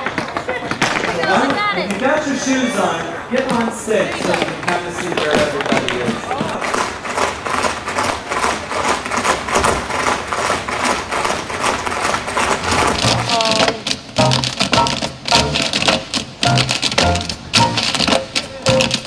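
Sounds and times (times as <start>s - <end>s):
tap shoes clicking on stage: 0.0s - 19.0s
music with bass line: 12.6s - 13.4s, 14.2s - 15.8s, 16.4s - 18.0s.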